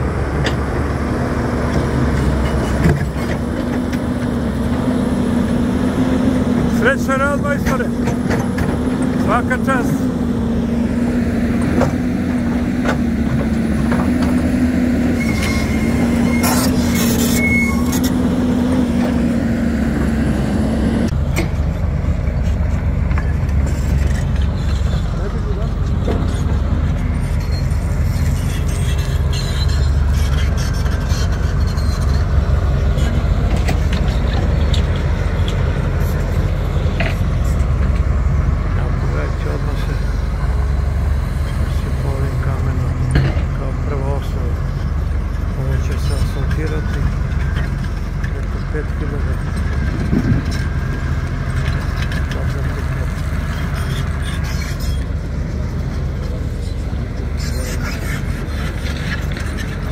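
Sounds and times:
heavy machinery engines: 0.0 - 59.9.

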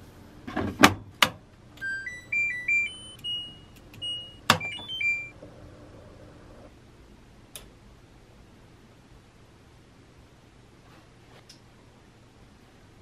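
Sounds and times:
short electronic beeps: 1.8 - 5.4.

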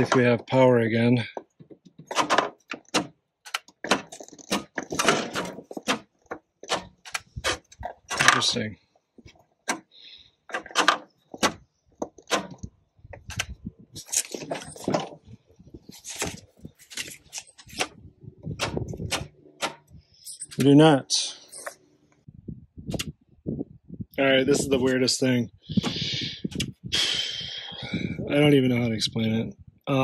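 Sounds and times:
control clicks and knocks: 1.4 - 8.5, 10.5 - 15.3, 16.1 - 20.8
keys jangling: 20.2 - 20.6.

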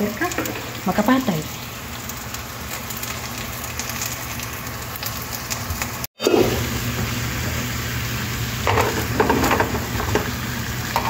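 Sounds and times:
chicken frying in a pan: 0.0 - 11.0.

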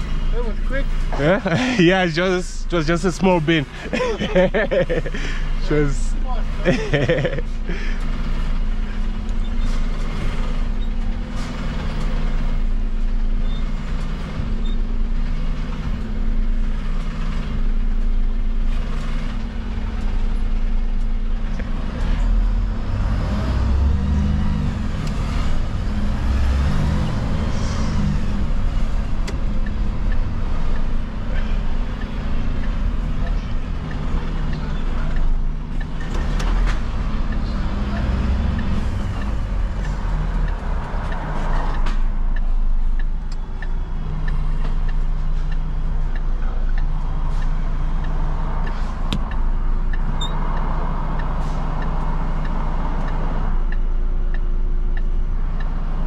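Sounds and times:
truck diesel engine running: 0.0 - 56.0.

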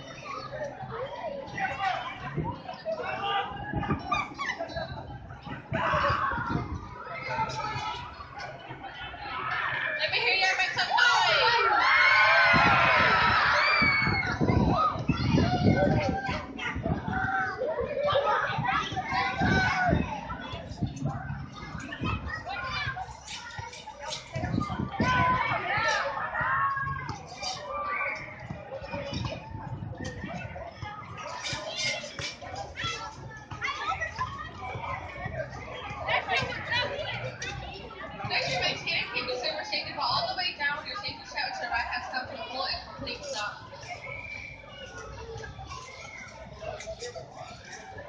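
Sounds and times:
children shouting and chattering: 0.0 - 48.0.

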